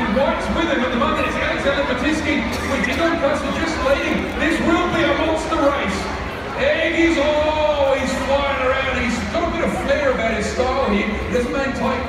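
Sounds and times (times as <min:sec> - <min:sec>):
man speaking over public address: 0:00.0 - 0:12.0.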